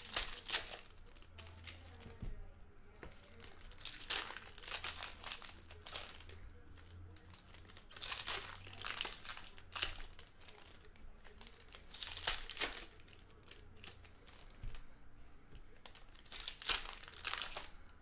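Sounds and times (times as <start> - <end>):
foil wrappers tearing and crinkling: 0.0 - 2.1, 3.1 - 14.8, 15.8 - 17.9.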